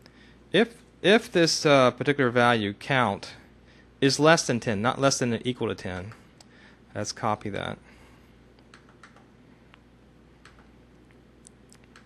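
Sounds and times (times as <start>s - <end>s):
keyboard and mouse clicks: 8.6s - 9.3s, 10.4s - 10.7s, 11.4s - 12.0s.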